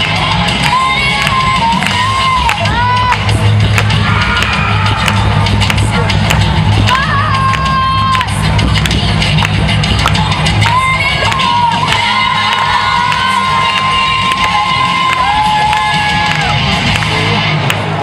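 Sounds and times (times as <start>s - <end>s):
crowd cheering: 0.0s - 8.5s, 10.6s - 18.0s
loud dance music: 0.0s - 18.0s.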